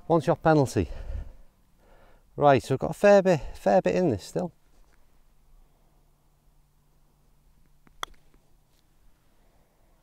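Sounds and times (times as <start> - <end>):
putter striking golf ball: 7.7 - 8.4.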